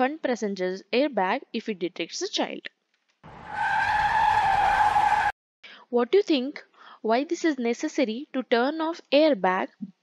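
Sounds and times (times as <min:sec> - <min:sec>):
car tyre screeching: 0:03.3 - 0:05.3.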